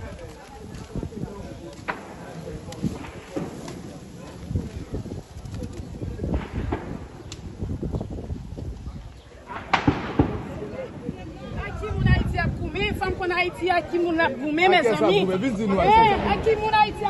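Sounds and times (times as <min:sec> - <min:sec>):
street murmur and voices: 0:00.0 - 0:17.0
gunshots cracking: 0:09.5 - 0:10.8.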